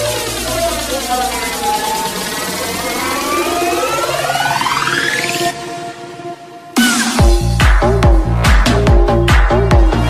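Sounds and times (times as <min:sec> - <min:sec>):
siren-like synth sweeps: 0:00.0 - 0:07.2
electronic dance music: 0:00.0 - 0:10.0.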